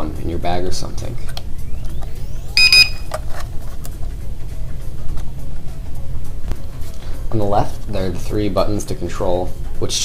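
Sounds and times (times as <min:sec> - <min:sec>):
background music: 0:00.0 - 0:10.0
high electronic beeps: 0:01.7 - 0:03.1.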